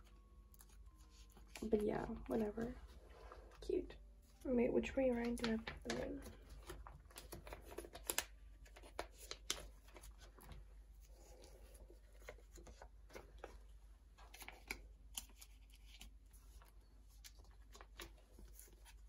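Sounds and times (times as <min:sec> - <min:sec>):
plastic sleeves rustling and crinkling: 0:00.0 - 0:19.0.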